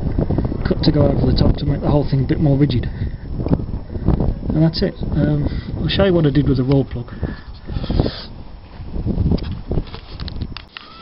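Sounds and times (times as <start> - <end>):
camera handling rustles and bumps: 9.2 - 11.0.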